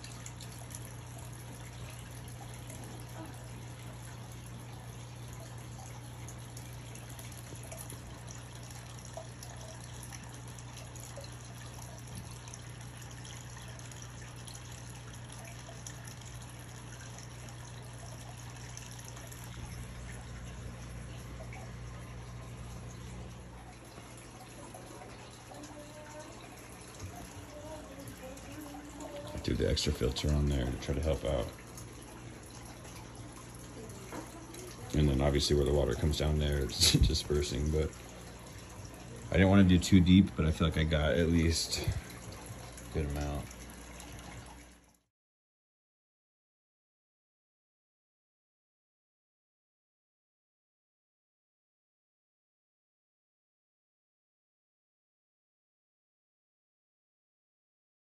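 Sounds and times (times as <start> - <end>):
filter water trickling and splashing: 0.0 - 45.1
low steady hum: 0.0 - 45.1.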